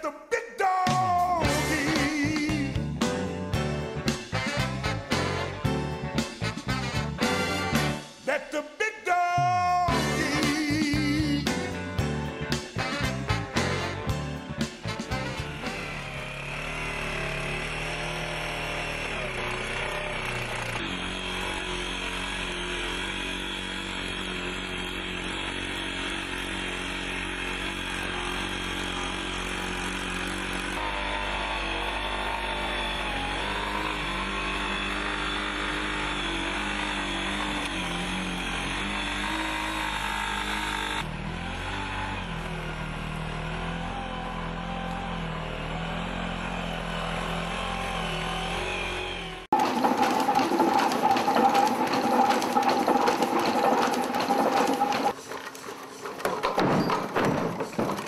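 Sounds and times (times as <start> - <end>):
rapid clicking: 49.5 - 58.0.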